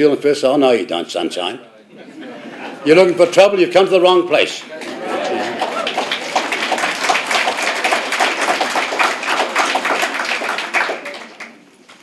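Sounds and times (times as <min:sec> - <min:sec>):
audience applause: 0:04.6 - 0:12.0.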